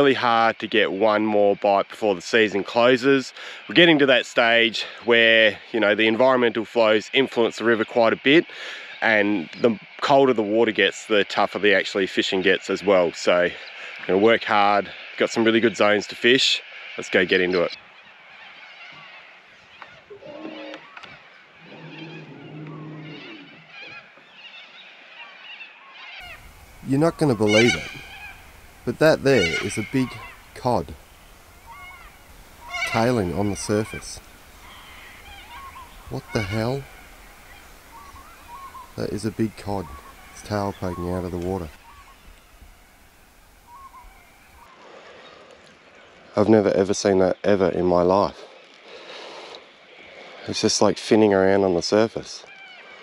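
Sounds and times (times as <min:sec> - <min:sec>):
birds chirping and warbling: 0:00.0 - 0:50.4, 0:52.4 - 0:53.0
low honking bird calls: 0:25.2 - 0:44.8.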